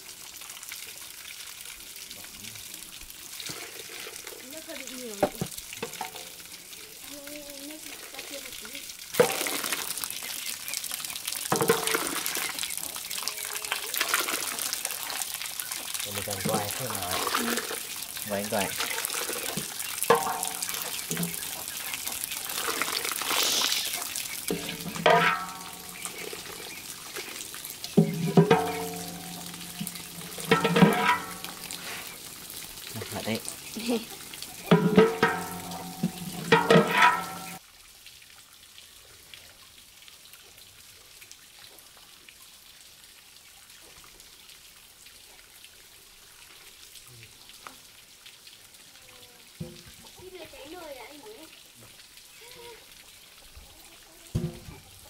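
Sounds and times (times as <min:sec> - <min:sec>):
water splashing and trickling: 0:00.0 - 0:55.0.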